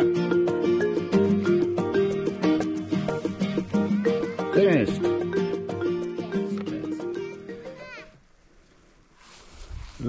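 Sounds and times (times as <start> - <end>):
soft rustling hiss: 8.1 - 10.0.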